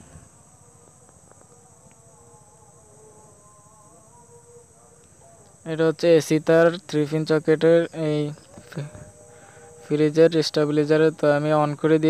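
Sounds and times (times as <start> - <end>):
crickets trilling: 0.0 - 12.0
flying insect whine: 0.0 - 12.0.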